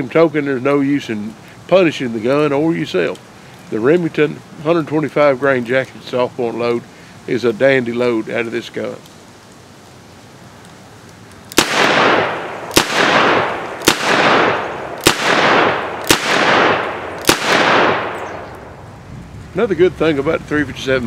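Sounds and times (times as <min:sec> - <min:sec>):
revolver shots with echo: 0:11.6 - 0:18.5.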